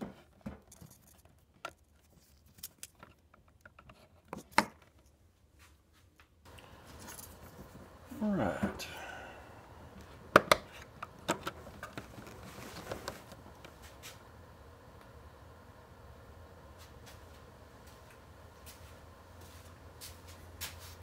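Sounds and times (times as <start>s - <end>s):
faint low hum: 0.1s - 21.0s.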